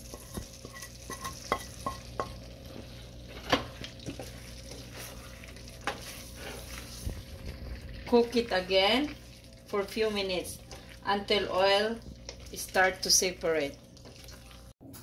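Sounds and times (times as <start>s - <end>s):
chicken sizzling in a pan: 0.0s - 14.7s
wooden spoon knocking on pan: 0.1s - 2.4s.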